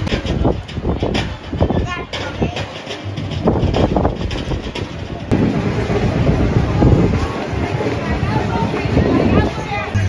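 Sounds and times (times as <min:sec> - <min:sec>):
outdoor noise: 0:00.0 - 0:10.0
wind buffeting microphone: 0:00.0 - 0:10.0.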